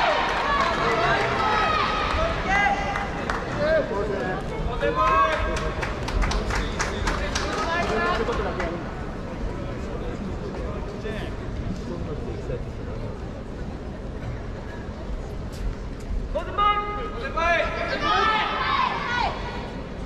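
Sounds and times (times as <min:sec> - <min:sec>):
murmur of indoor hall: 0:00.0 - 0:20.0.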